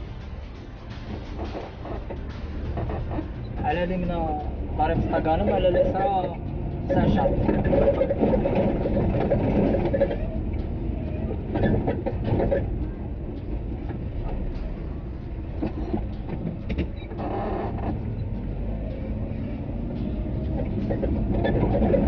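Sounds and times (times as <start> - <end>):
car engine and tyres rumble: 0.0 - 22.0.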